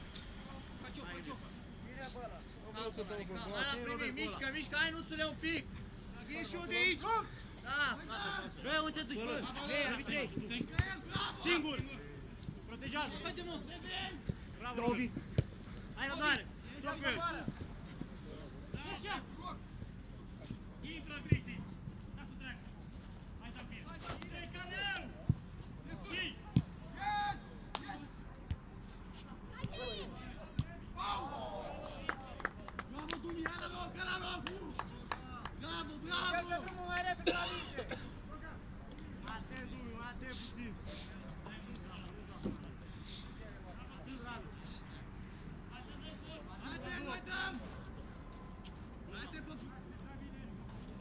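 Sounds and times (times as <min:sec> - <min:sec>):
players shouting: 0:29.6 - 0:32.2.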